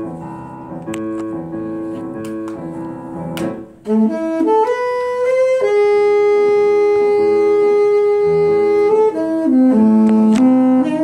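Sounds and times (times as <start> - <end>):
piano accompaniment: 0.0 - 11.0
saxophone long note: 3.8 - 11.0.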